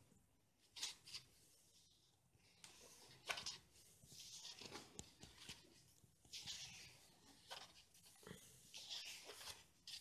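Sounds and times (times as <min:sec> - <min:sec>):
paper pages rustling: 0:02.6 - 0:10.0.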